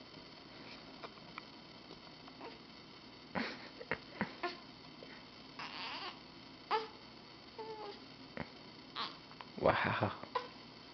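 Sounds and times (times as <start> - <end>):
baby squeaking: 5.6 - 6.9.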